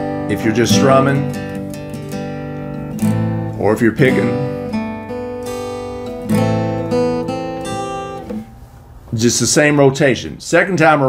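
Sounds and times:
acoustic guitar picking chords: 0.0s - 10.0s.

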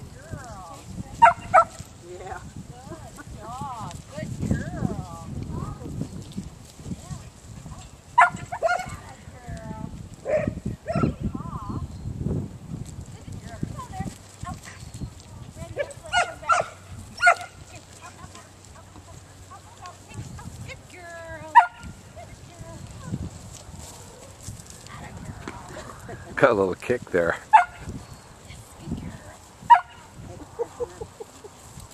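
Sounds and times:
dog barking: 1.2s - 1.8s, 8.2s - 9.0s, 10.3s - 11.2s, 16.1s - 17.6s, 21.6s - 22.0s, 27.5s - 27.9s, 29.7s - 30.1s.

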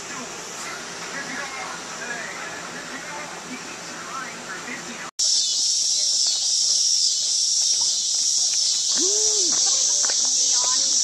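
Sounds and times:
murmur of voices indoors: 0.0s - 5.1s
high-pitched insect chorus: 5.2s - 11.0s.

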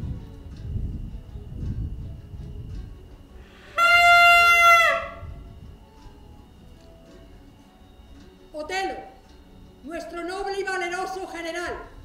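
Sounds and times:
brass horn long high note: 3.5s - 5.3s.

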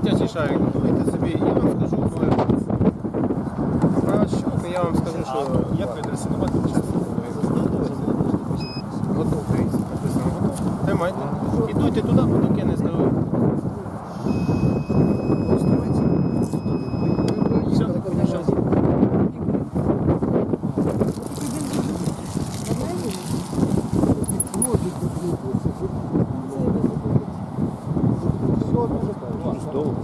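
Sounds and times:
people talking: 0.0s - 2.6s, 4.0s - 14.0s, 15.0s - 19.6s, 20.9s - 27.4s, 28.2s - 30.0s
breathalyzer high-pitched beep: 14.2s - 17.7s.

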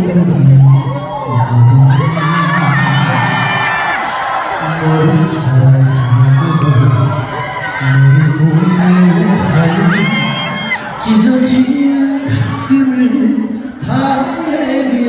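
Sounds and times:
audience cheering and whooping: 0.7s - 11.5s
man singing into a microphone: 4.7s - 15.0s.

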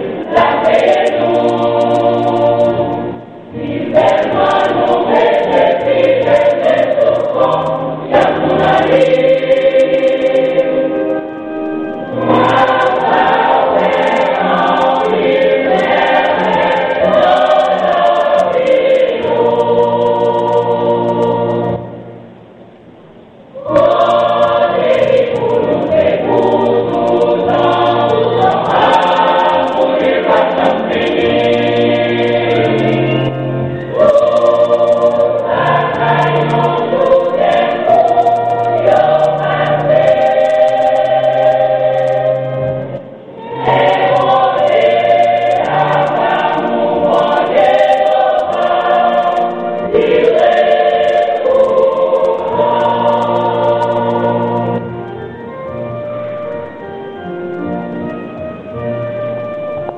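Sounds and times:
gospel choir singing: 0.0s - 22.2s, 23.5s - 58.1s.

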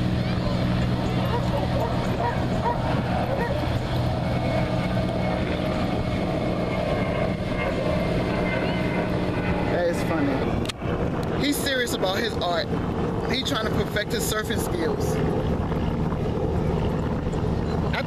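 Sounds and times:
steady low hum: 0.0s - 18.0s
dogs barking and yipping: 1.2s - 3.8s
people talking: 9.7s - 10.4s, 11.4s - 12.7s, 13.3s - 15.2s.

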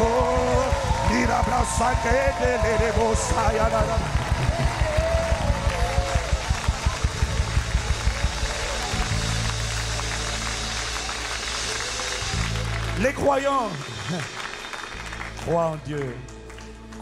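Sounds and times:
crowd din: 0.0s - 13.1s
congregation clapping in time: 0.0s - 17.0s.

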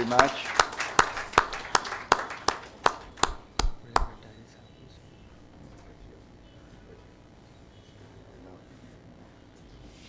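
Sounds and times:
audience applauding: 0.0s - 4.2s
person clapping hands: 0.0s - 4.2s.

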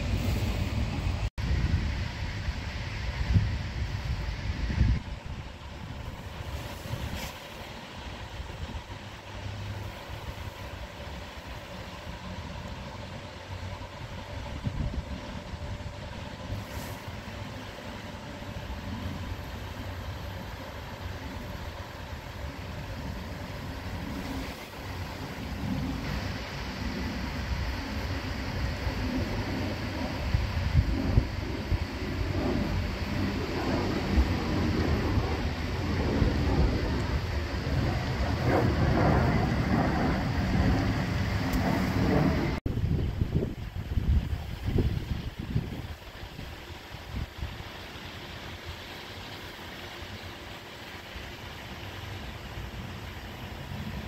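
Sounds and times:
jet engine drone: 0.0s - 54.0s.

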